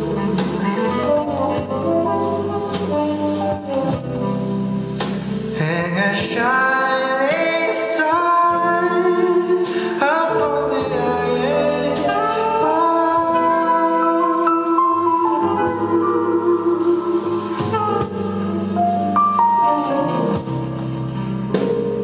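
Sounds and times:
band accompanying: 0.0s - 22.0s
man singing a slow ballad: 5.5s - 14.8s.

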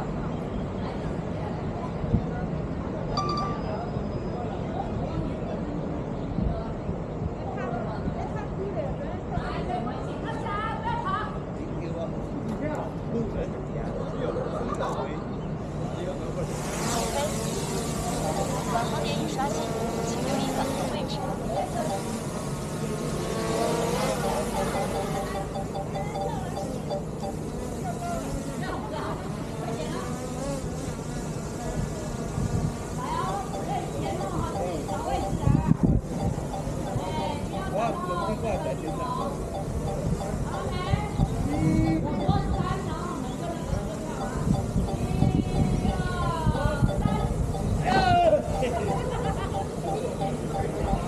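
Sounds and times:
voices chattering: 0.0s - 51.0s
drone propellers whirring: 16.4s - 28.8s, 32.7s - 51.0s.

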